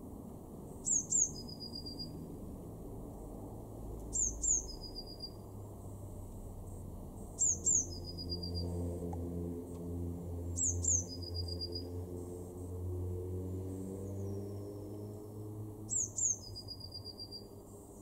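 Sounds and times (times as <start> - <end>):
bird singing high notes and trill: 0.8 - 2.3, 4.1 - 5.4, 7.4 - 8.9, 10.5 - 12.0, 15.9 - 17.6.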